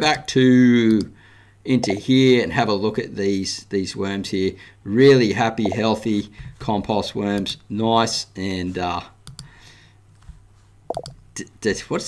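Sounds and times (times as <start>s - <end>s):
computer mouse clicks: 9.2s - 9.5s, 10.9s - 11.2s.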